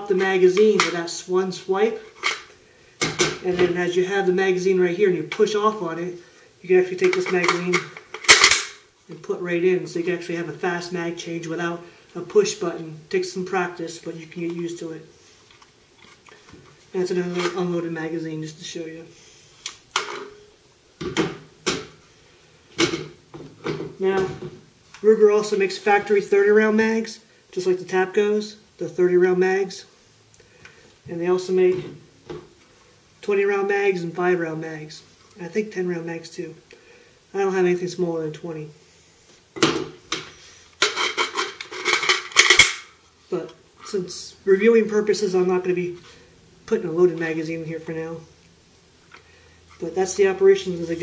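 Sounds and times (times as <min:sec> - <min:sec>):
rifle magazine metallic clicks: 0:07.4 - 0:08.8, 0:42.3 - 0:42.9.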